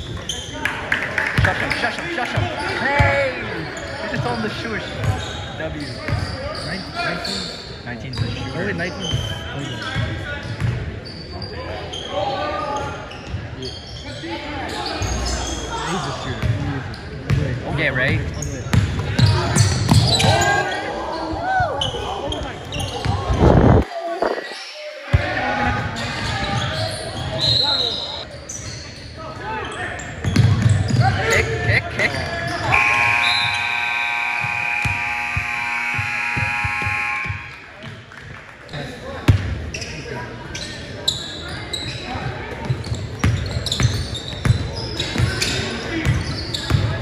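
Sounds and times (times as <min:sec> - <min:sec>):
players and spectators shouting: 0:19.2 - 0:23.4, 0:31.0 - 0:37.8
scoreboard horn blast: 0:32.7 - 0:37.6.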